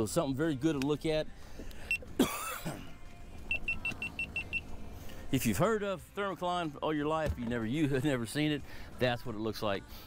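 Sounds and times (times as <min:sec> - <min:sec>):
low steady rumble: 0:02.8 - 0:10.0
rapid high-pitched electronic beeps: 0:03.5 - 0:04.7.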